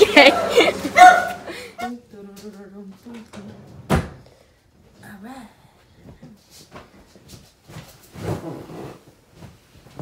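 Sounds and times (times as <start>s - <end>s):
bedding rustling: 6.0s - 10.0s.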